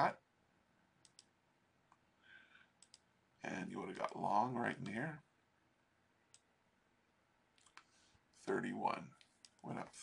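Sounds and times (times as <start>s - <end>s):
computer mouse clicks: 1.0s - 1.3s, 2.8s - 3.1s, 3.9s - 4.2s, 7.6s - 7.9s, 9.2s - 9.8s.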